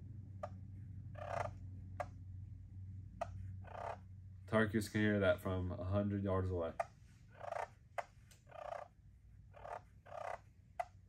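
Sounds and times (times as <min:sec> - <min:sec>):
turkey call clucking and purring: 0:00.4 - 0:02.2, 0:03.2 - 0:04.2, 0:06.8 - 0:11.0.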